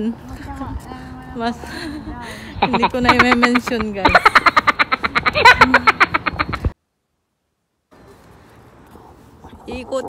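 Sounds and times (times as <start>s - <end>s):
faint outdoor background noise: 0.0s - 10.0s
rapid pulsing laughter: 2.6s - 6.7s.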